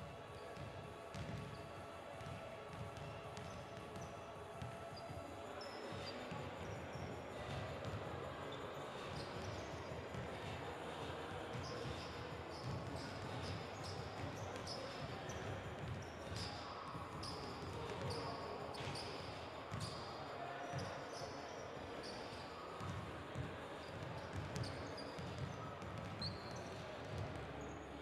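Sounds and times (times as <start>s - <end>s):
sneakers squeaking on floor: 11.5s - 20.1s, 22.0s - 27.8s.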